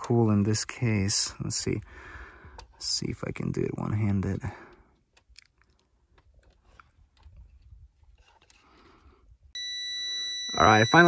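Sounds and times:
probe tips ticking and scraping: 0:00.0 - 0:09.1
multimeter continuity beep: 0:09.5 - 0:11.0.

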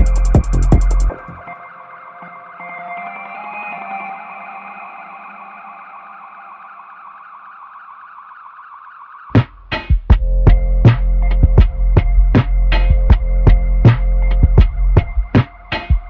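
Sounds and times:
loud electronic music: 0:00.0 - 0:16.0
subway train electric whine and hum: 0:01.3 - 0:07.6.

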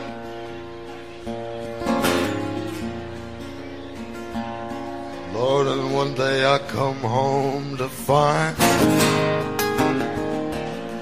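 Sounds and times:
acoustic guitar: 0:00.0 - 0:11.0
man singing: 0:05.2 - 0:10.1.

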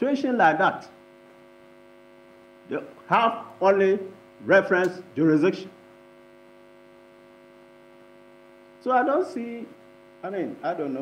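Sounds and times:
man speaking: 0:00.0 - 0:01.0, 0:02.7 - 0:05.8, 0:08.8 - 0:11.0
faint steady hum: 0:00.0 - 0:11.0.

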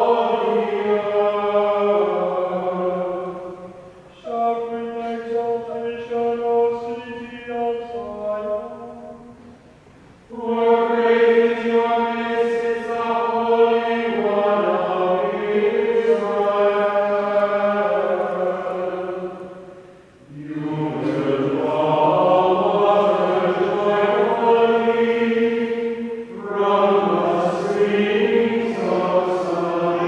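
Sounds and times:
liturgical chant: 0:00.0 - 0:30.0.

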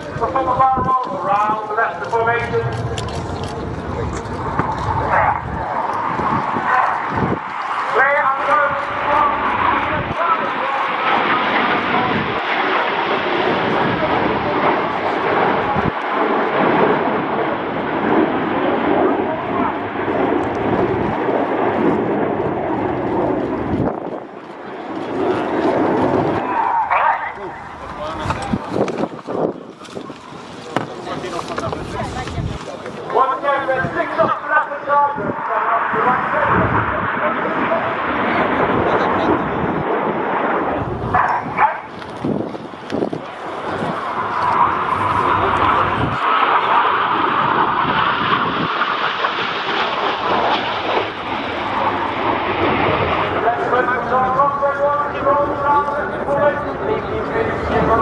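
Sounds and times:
person speaking: 0:00.0 - 0:04.4
jet aircraft roar: 0:00.0 - 0:58.0.

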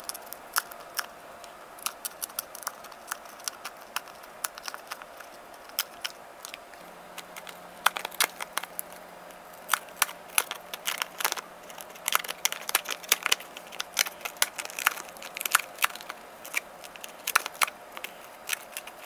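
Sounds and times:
plastic bag crinkling: 0:01.9 - 0:19.0.

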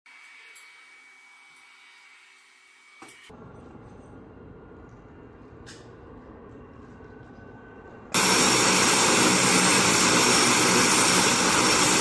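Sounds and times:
turboprop aircraft whine: 0:03.3 - 0:12.0
heavy low rumble: 0:03.4 - 0:11.8.

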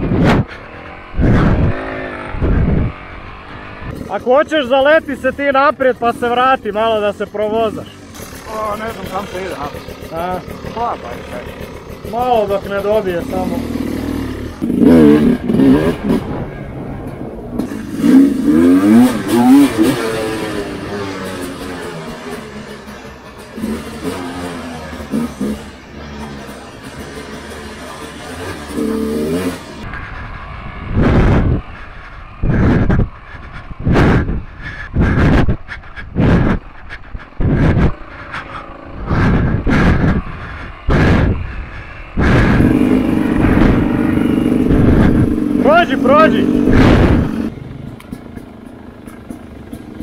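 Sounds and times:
motorcycle engine revving: 0:00.0 - 0:50.0.

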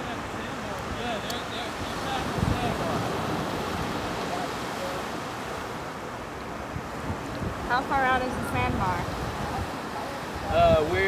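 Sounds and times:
surf washing: 0:00.0 - 0:11.0
wind blowing across microphone: 0:00.0 - 0:11.0.

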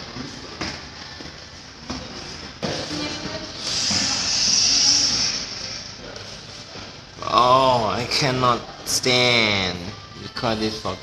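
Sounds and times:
steady hiss: 0:03.6 - 0:06.7.

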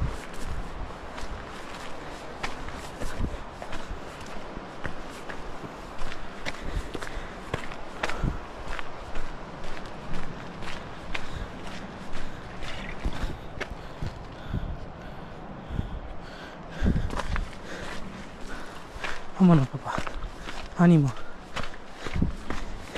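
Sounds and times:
footsteps crunching on gravel: 0:00.0 - 0:14.7, 0:16.9 - 0:22.9.

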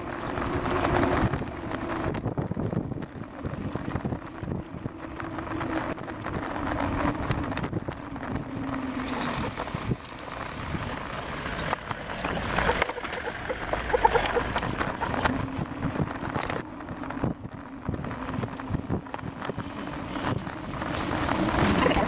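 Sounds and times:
bicycle rolling on pavement: 0:00.0 - 0:22.0
wind buffeting microphone: 0:00.0 - 0:22.0.

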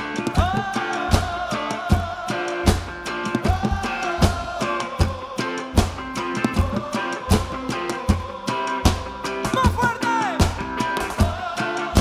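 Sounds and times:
heavy drum beat: 0:00.0 - 0:12.0
live band music: 0:00.0 - 0:12.0
person singing: 0:00.0 - 0:12.0.

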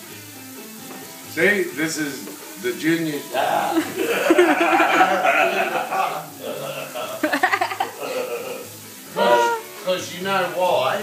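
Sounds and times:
men laughing and talking: 0:03.3 - 0:09.7.

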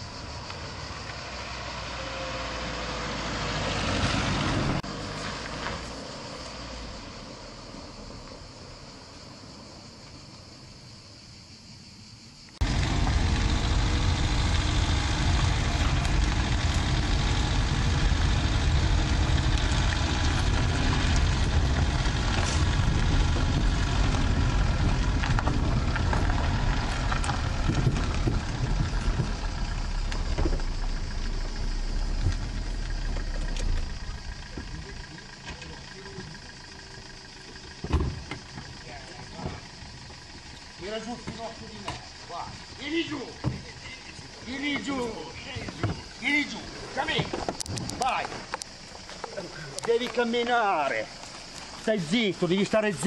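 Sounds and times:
car engine and tyre rumble: 0:00.0 - 0:53.0.

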